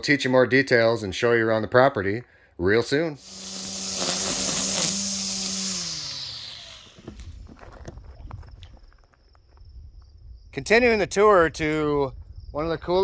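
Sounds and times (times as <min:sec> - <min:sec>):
high insect trill: 0:03.2 - 0:10.6.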